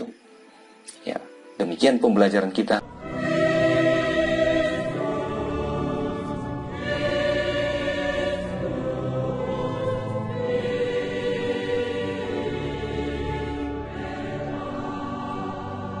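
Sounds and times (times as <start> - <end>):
choir holding sustained chords: 0.0 - 16.0.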